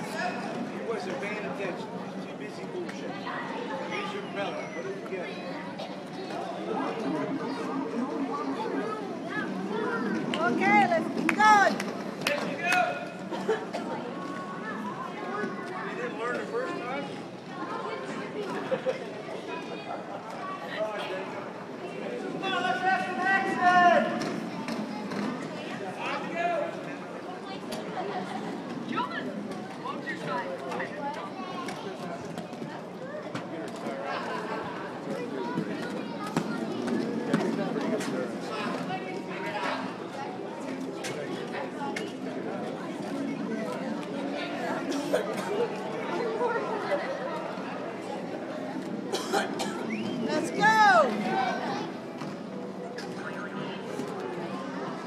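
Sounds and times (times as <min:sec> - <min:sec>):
people chatting in a large hall: 0:00.0 - 0:55.0
spectators talking: 0:00.0 - 0:55.0.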